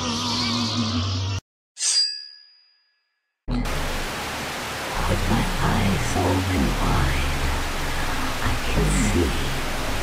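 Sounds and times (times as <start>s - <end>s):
tv static hiss: 3.7s - 10.0s.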